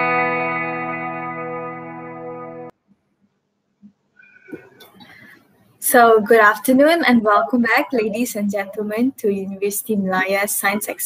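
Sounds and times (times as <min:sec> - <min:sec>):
woman speaking: 0:05.8 - 0:11.0.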